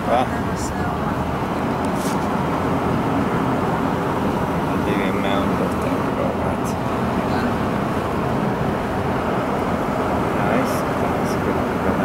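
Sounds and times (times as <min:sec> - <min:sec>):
car running noise from inside: 0:00.0 - 0:12.0.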